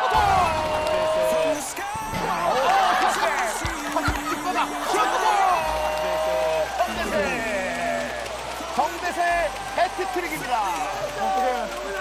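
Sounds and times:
men shouting and whooping: 0:00.0 - 0:12.0
music: 0:00.0 - 0:12.0.

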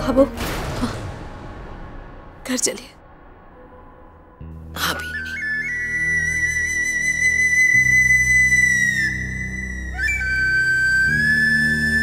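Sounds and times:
high flute melody: 0:05.0 - 0:12.0.

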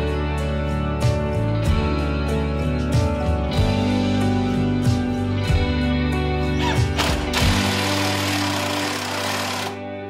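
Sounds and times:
guitar music: 0:00.0 - 0:10.0
cordless drill driving a screw: 0:06.6 - 0:09.8.

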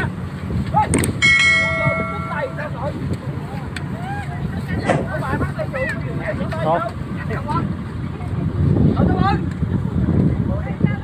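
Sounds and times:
bright bell chime: 0:01.2 - 0:02.9.

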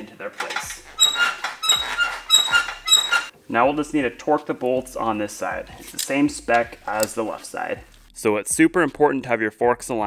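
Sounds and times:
motorcycle forks squeaking: 0:00.6 - 0:03.3.

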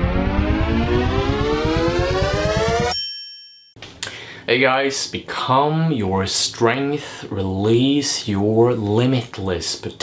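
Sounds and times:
fast low pulse: 0:00.0 - 0:02.9
synth tone rising in pitch: 0:00.0 - 0:03.0
bright ringing chime: 0:02.9 - 0:03.8.

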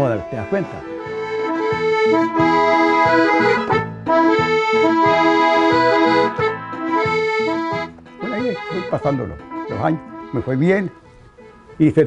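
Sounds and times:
piano accordion melody: 0:00.0 - 0:12.0.

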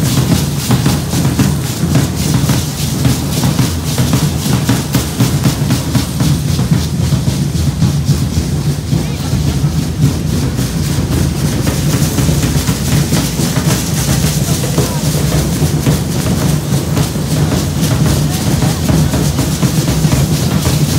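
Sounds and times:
drum beating quick rhythm: 0:00.0 - 0:20.9.

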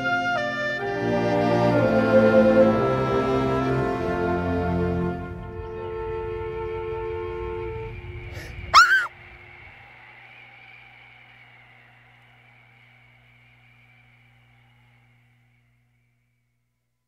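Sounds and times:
short loud cry: 0:08.4 - 0:09.1.

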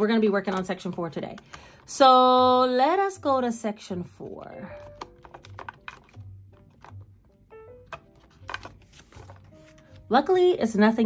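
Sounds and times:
soft background music with beat: 0:00.0 - 0:11.0
plastic cards clicking and tapping: 0:00.2 - 0:02.0, 0:04.6 - 0:10.1.

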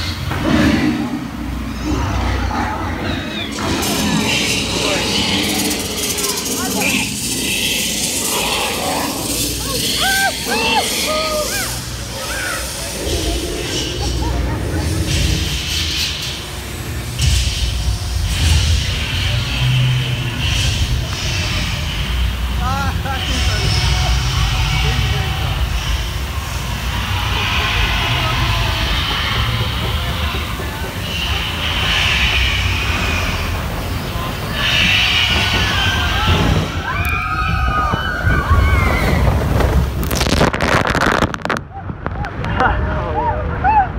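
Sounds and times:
indistinct voices: 0:00.0 - 0:43.9
low rumble with hiss: 0:00.0 - 0:43.9.

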